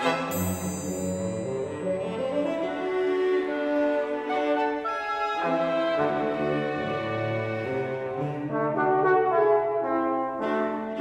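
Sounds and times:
horn and trombone: 0.0s - 0.6s, 4.2s - 11.0s
chamber orchestra playing chords: 0.0s - 11.0s.

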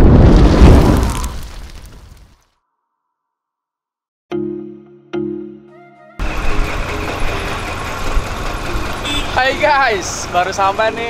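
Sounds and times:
street traffic engine noise: 6.2s - 11.0s
truck driving past: 6.2s - 11.0s.

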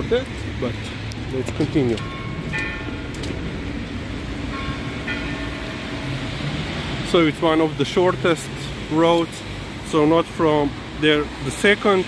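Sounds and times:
engine hum: 0.0s - 12.0s
tyres hissing on wet road: 3.4s - 12.0s.

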